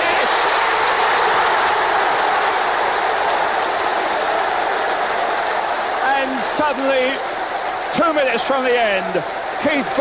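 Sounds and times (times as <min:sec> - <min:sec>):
stadium crowd roaring and cheering: 0:00.0 - 0:10.0.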